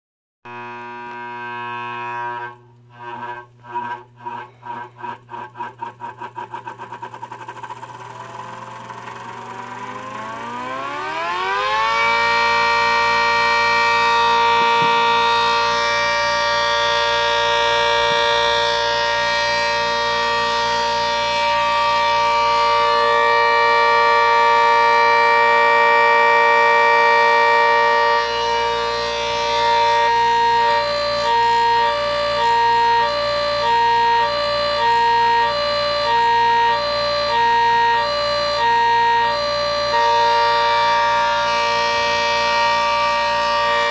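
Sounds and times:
siren winding up: 0:00.5 - 0:43.9.

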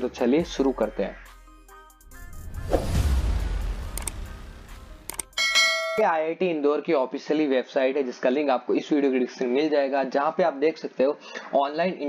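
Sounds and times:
whoosh: 0:02.1 - 0:05.1
mouse clicks: 0:03.9 - 0:04.2, 0:05.1 - 0:05.4
notification bell ding: 0:05.3 - 0:06.0.

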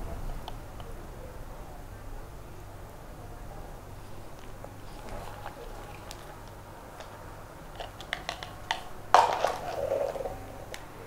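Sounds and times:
faint steady hum: 0:00.0 - 0:11.0
plastic bag crinkling: 0:04.8 - 0:10.4.

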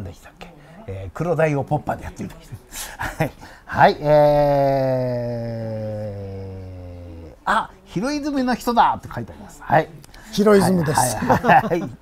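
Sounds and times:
man's drawn-out hesitation vowel: 0:03.8 - 0:07.5.

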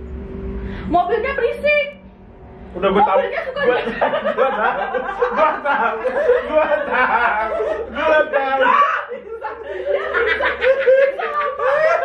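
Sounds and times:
people speaking: 0:00.9 - 0:02.0, 0:02.8 - 0:12.0
group of people laughing: 0:03.2 - 0:12.0.

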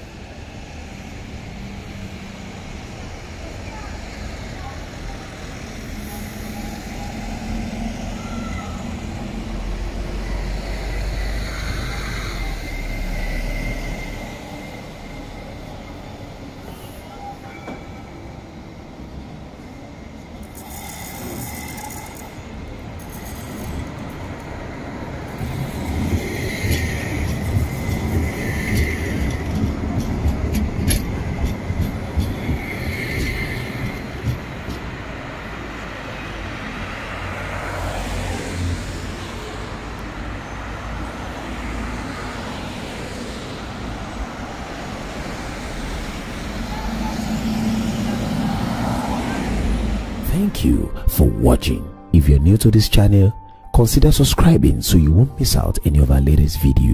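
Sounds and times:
tram moving along track: 0:00.0 - 0:56.9
cars driving past: 0:20.5 - 0:50.2.

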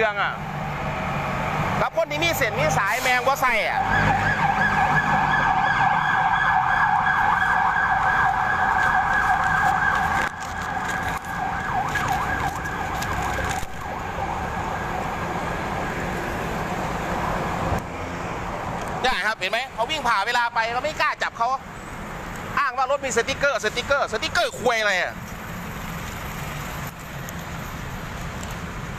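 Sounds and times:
steady traffic noise: 0:00.0 - 0:28.9
siren warbling: 0:03.6 - 0:15.4.

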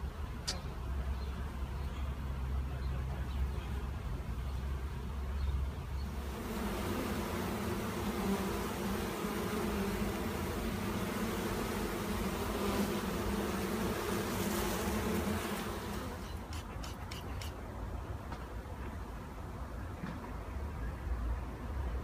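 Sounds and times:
bee swarm buzzing: 0:06.0 - 0:17.6.

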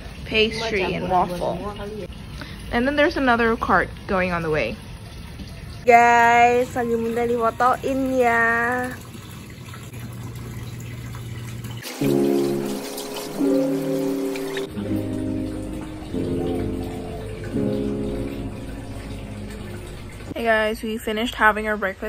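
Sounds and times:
water splashing into a pool: 0:00.0 - 0:20.4
background music of held notes: 0:11.9 - 0:20.3.

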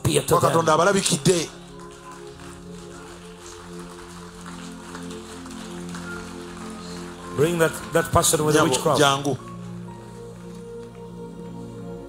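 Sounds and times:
soft keyboard chords: 0:00.0 - 0:12.0.

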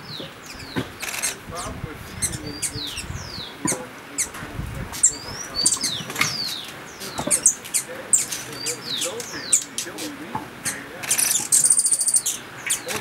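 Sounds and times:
small birds chirping: 0:00.0 - 0:13.0
wings fluttering: 0:00.5 - 0:01.7.

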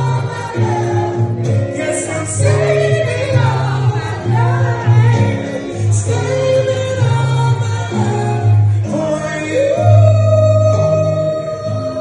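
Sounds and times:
deep bass line: 0:00.0 - 0:12.0
woman singing into microphone: 0:00.0 - 0:12.0.

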